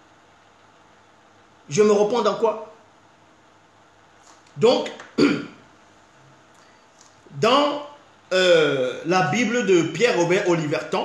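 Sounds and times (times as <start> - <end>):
man clearing his throat: 5.2 - 5.6.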